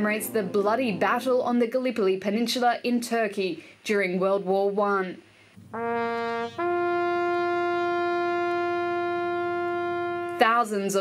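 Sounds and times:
bugle long held note: 5.7 - 10.4.

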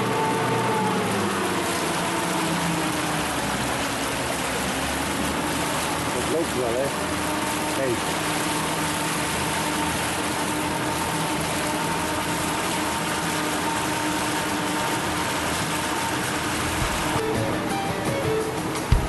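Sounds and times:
outboard motors droning: 0.0 - 19.0
propeller wash rushing: 0.0 - 19.0
music: 17.2 - 19.0.

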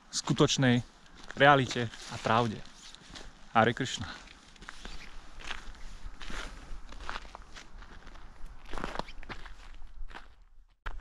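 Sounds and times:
footsteps on leaves and snow: 0.9 - 10.4.

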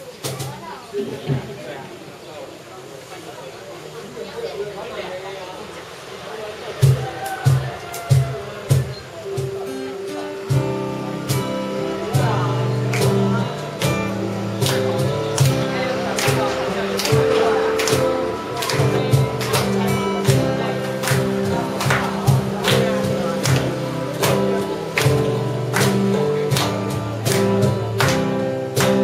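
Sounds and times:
acoustic guitars strumming: 5.9 - 29.0
steady drum beat: 6.8 - 29.0.

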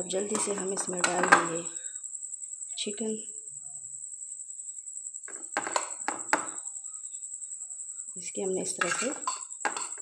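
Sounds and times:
spoon clinking on plate: 8.8 - 10.0.

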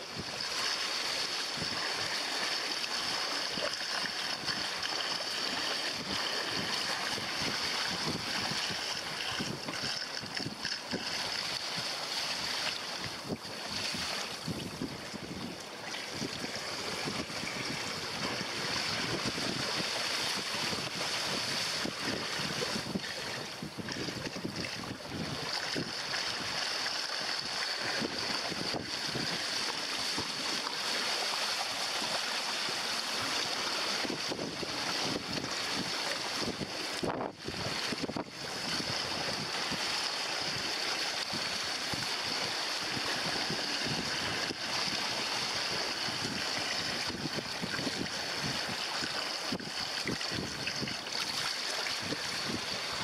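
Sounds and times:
water splashing along hull: 0.0 - 53.0
wind buffeting microphone: 3.6 - 26.6, 27.3 - 30.6, 33.4 - 40.7, 41.3 - 53.0.

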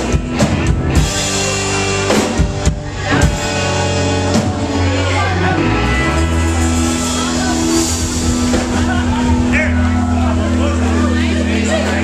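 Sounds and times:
crowd voices: 0.0 - 12.0
live band playing: 0.0 - 12.0.

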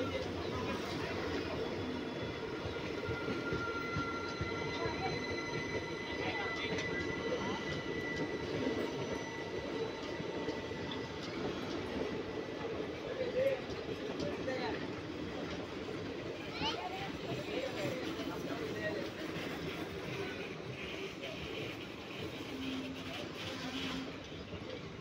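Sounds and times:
train wheels rumbling on rails: 0.0 - 25.0
high wheel squeals: 0.1 - 12.6.

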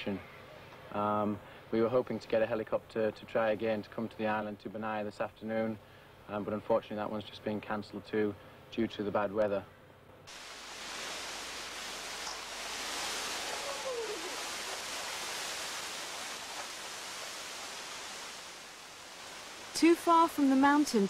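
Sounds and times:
rainforest rushing hiss: 10.3 - 21.0
faint falling call: 13.2 - 14.8.

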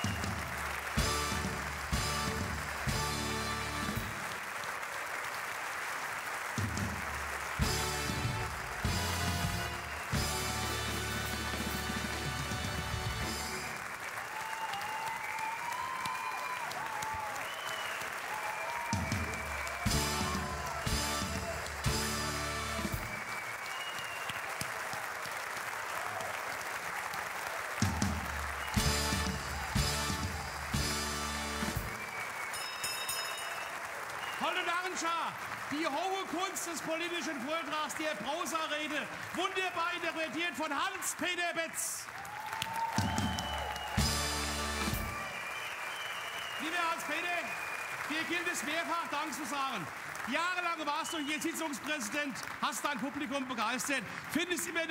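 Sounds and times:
band playing rhythmic music: 0.0 - 4.4, 6.6 - 13.8, 19.0 - 23.3, 27.8 - 33.5, 43.8 - 45.4
audience applauding: 0.0 - 54.9.

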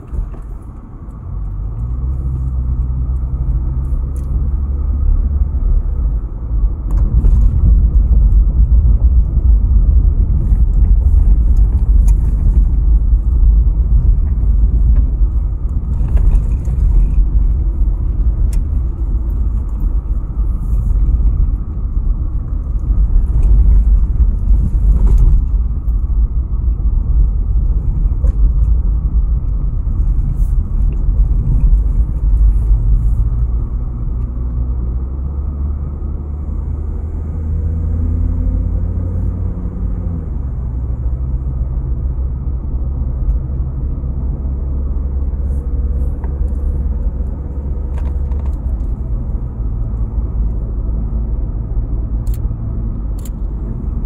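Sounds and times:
car engine and tyre noise: 0.0 - 54.0.

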